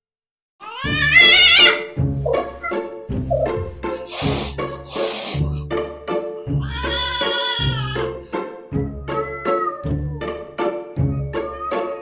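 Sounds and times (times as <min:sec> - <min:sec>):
cat meowing: 0:00.6 - 0:02.9, 0:06.6 - 0:08.0, 0:08.9 - 0:10.0, 0:11.2 - 0:12.0.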